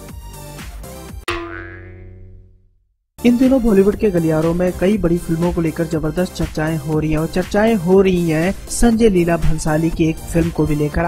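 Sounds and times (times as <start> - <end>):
ringing transition sound effect: 1.3 - 2.5
background music: 3.2 - 11.0.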